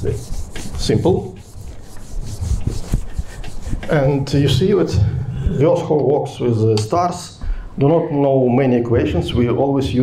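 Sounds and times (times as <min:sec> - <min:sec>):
rubbing and scraping: 0:00.0 - 0:04.6.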